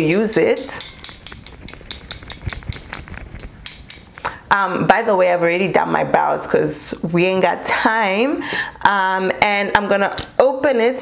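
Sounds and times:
bottle rattling when shaken: 0.0 - 4.3.

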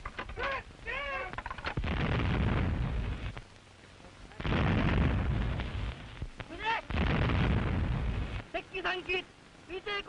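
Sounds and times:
heavy rumbling blasts: 0.6 - 3.5, 4.2 - 9.6.

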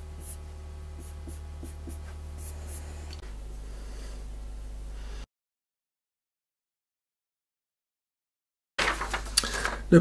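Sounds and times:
low electrical hum: 0.0 - 5.3, 8.8 - 10.0
marker pen scratching on paper: 0.2 - 0.4, 1.0 - 2.9.

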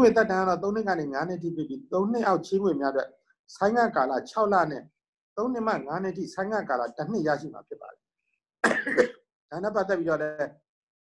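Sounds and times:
person speaking: 0.0 - 7.9, 9.5 - 10.6
person coughing: 8.6 - 9.2.

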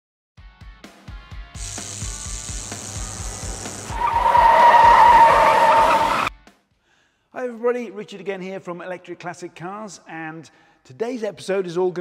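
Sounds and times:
fast thumping music beat: 1.1 - 5.4
car tyre screech: 3.9 - 6.3.

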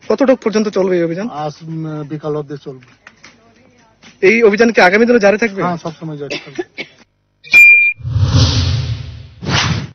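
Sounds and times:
short high beep: 7.4 - 8.1
deep rumble: 8.0 - 9.4
loud rushing noise: 8.0 - 9.9.

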